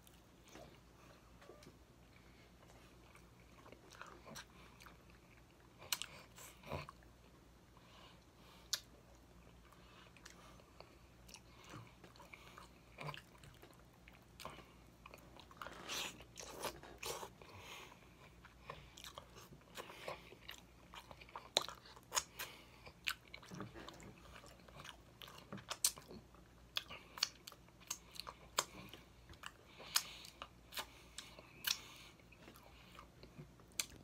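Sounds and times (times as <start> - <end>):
person chewing with mouth smacks: 2.5 - 7.4, 8.2 - 34.0.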